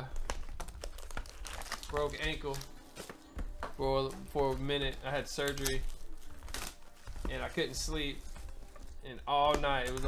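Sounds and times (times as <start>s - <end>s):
foil packs crinkling: 0.0s - 3.2s, 3.8s - 10.0s.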